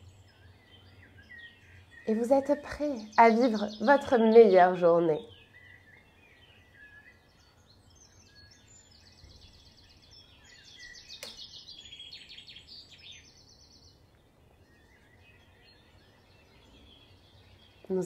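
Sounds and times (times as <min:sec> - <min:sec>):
bird trilling song: 0:00.0 - 0:18.0
songbirds chirping: 0:00.0 - 0:18.0
sharp click: 0:11.2 - 0:11.5.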